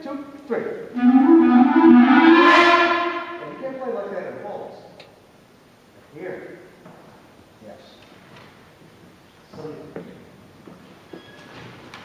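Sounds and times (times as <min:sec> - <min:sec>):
wind band sustained chord: 0:01.0 - 0:03.9.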